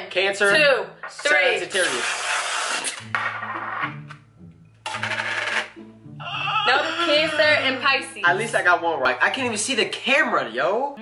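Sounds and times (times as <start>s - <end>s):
whipped cream can spraying: 1.7s - 3.0s.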